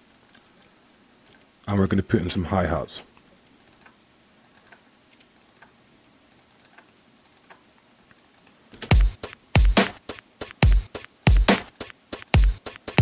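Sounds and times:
computer mouse and keyboard clicks: 3.6 - 8.9.

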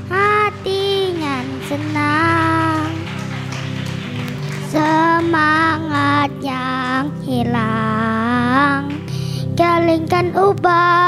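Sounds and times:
child singing through microphone: 0.0 - 3.1, 4.5 - 11.0
instrumental accompaniment: 0.0 - 11.0.

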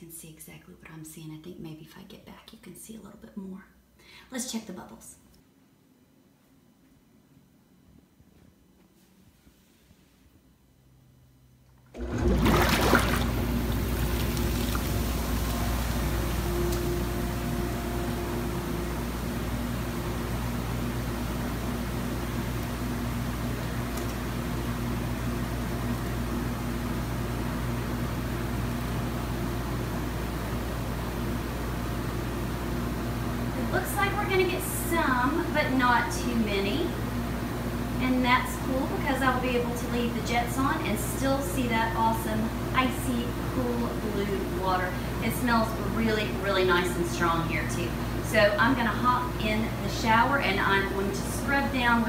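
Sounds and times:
pump motor humming: 11.8 - 26.6
churning foaming water: 11.9 - 16.5.

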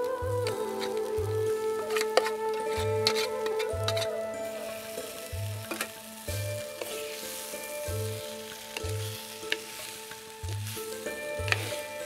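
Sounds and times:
background music with slow beat: 0.0 - 12.0
oil sizzling in a pot: 0.2 - 12.0.

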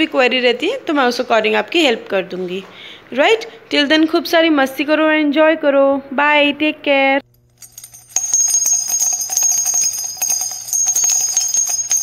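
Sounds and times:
jingle bells shaken: 7.5 - 12.0.

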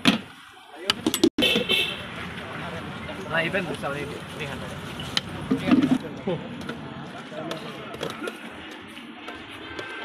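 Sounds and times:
traffic: 0.0 - 10.0.

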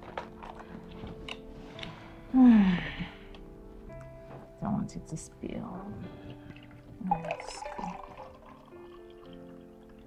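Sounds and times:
soft background music: 0.0 - 10.0
drink pouring into glass: 6.3 - 10.0.

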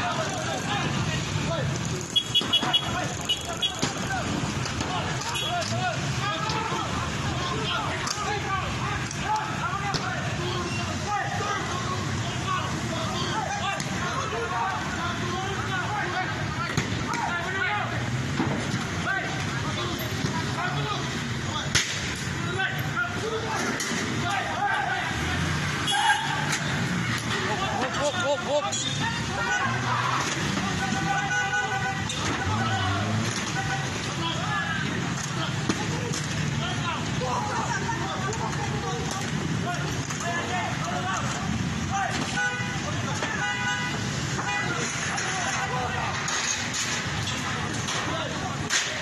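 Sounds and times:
crowd voices and shouts: 0.0 - 49.0
street noise: 0.0 - 49.0
car horns honking: 2.0 - 4.2, 5.1 - 6.8, 25.1 - 29.8, 30.4 - 34.0, 41.9 - 45.4.

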